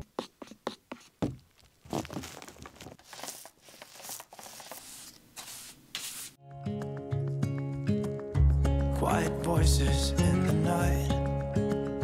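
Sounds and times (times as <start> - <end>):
paintbrush swishing strokes: 3.0 - 6.4.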